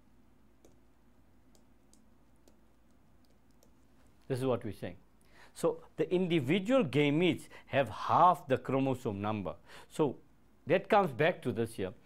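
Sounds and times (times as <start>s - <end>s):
stylus tapping on tablet screen: 1.5s - 3.8s.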